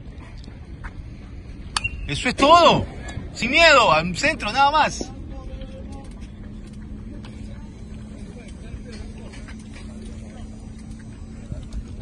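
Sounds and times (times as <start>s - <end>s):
low outdoor background noise: 0.0s - 12.0s
sharp crack with ringing tone: 1.7s - 2.1s.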